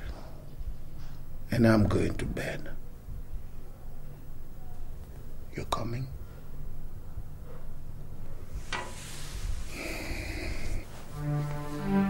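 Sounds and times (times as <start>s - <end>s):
low room hum: 0.0s - 12.0s
person exhaling breathily: 9.6s - 10.9s.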